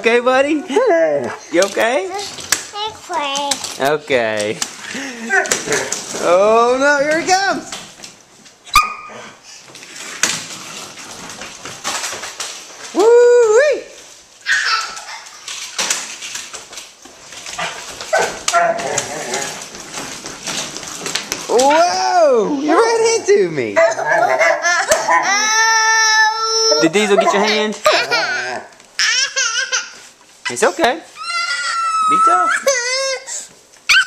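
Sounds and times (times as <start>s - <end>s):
toy stroller wheels rattling on wood: 1.5s - 8.2s, 9.6s - 13.1s, 14.4s - 33.2s
toddler wailing: 24.6s - 27.0s, 27.9s - 30.0s, 31.2s - 34.0s.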